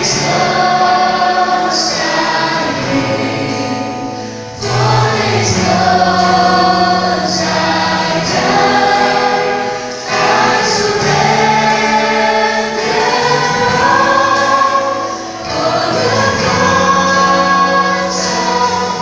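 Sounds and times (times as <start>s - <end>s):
bass: 0.0s - 19.0s
drums: 0.0s - 19.0s
guitar: 0.0s - 19.0s
voices singing held notes: 0.0s - 19.0s.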